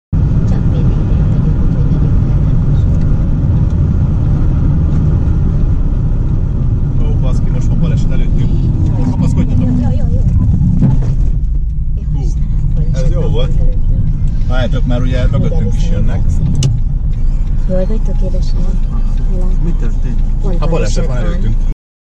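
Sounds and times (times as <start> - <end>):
car cabin road rumble: 0.1 - 21.7
people talking: 0.4 - 3.0, 7.0 - 11.3, 12.0 - 21.8.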